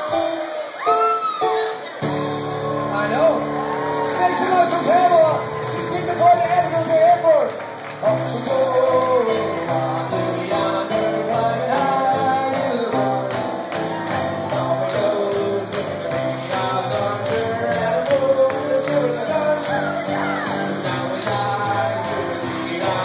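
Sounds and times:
grand piano chords: 0:00.0 - 0:23.0
man singing into microphone: 0:04.2 - 0:23.0.

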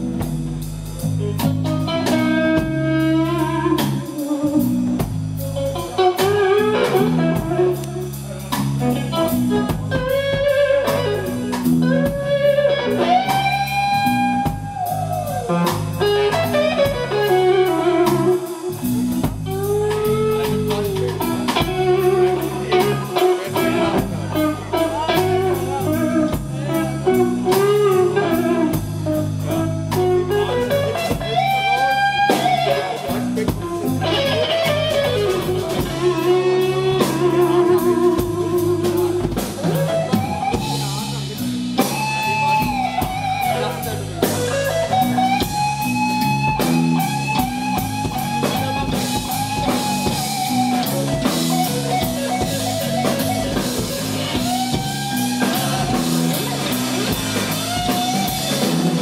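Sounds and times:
bass and drums: 0:00.0 - 0:59.0
electric guitar solo: 0:01.0 - 0:59.0.

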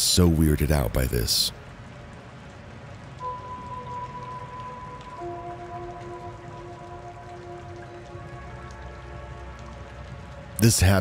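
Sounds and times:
rain-like patter: 0:00.0 - 0:11.0
ambient music held notes: 0:01.5 - 0:11.0.

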